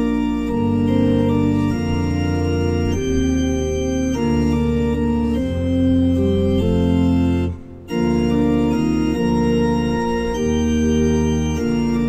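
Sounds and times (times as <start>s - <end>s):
organ playing a hymn: 0.0s - 12.0s.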